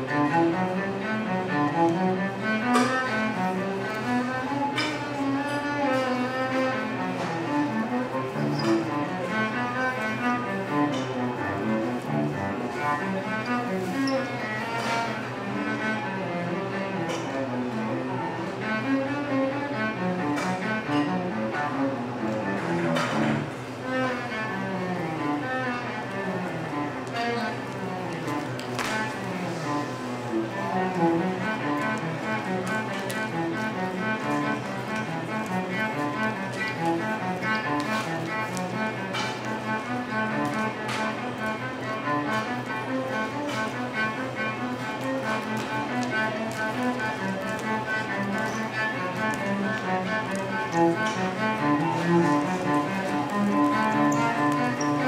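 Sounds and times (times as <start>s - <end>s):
cello melody: 0.0s - 55.0s.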